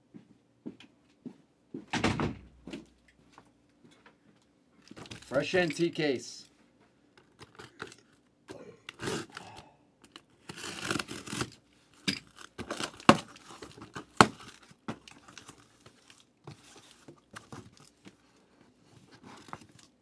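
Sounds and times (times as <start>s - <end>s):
cardboard rustling: 10.1s - 20.0s
utility knife slicing tape: 10.4s - 11.5s.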